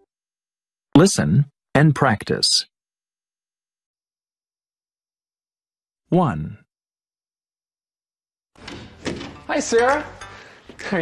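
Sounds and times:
door opening: 8.6s - 11.0s.

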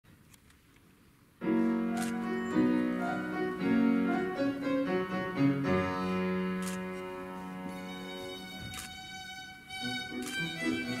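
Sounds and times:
classical piano music: 1.4s - 11.0s.

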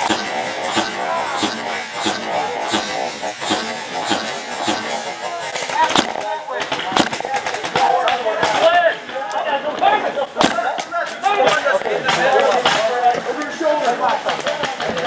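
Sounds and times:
paintball markers firing: 0.0s - 8.7s
players shouting: 0.0s - 15.0s.

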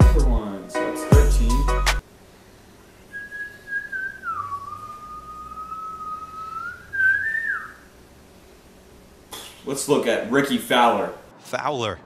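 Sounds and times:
person whistling a wavering note: 3.1s - 7.8s.

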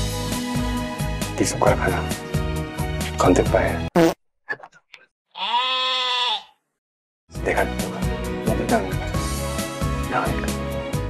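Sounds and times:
drawn-out bleat-like call: 5.3s - 6.6s.

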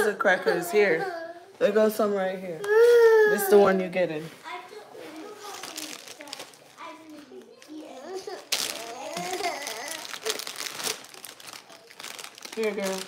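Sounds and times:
plastic wrapper crinkling: 5.0s - 13.0s
small child vocalizing: 7.8s - 10.4s.

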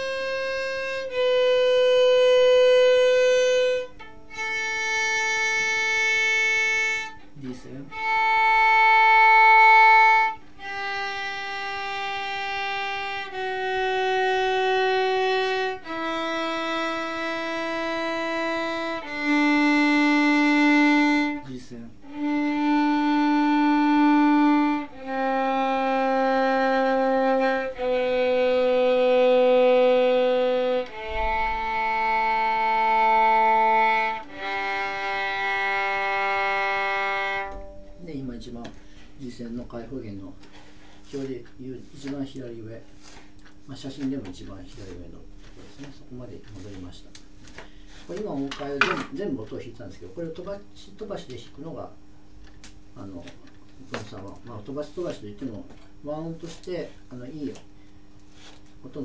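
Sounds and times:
violin bowing long note: 0.0s - 39.0s.

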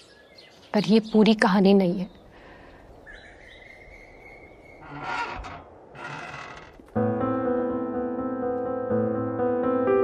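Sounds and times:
bird chirps: 3.0s - 4.8s.

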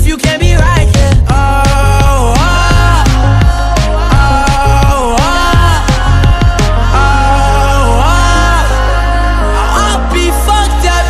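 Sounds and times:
pop music melody over bass: 0.0s - 11.0s.

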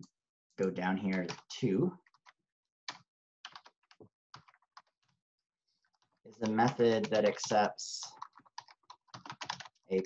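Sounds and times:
computer keyboard typing: 0.6s - 5.0s, 5.9s - 10.0s.

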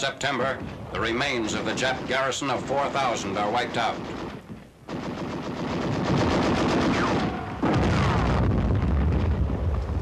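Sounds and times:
machine-gun fire: 1.1s - 9.3s.

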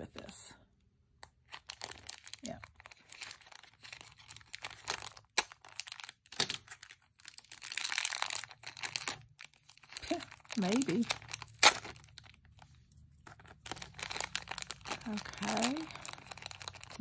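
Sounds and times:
plastic packaging crinkling and tearing: 1.3s - 17.0s.

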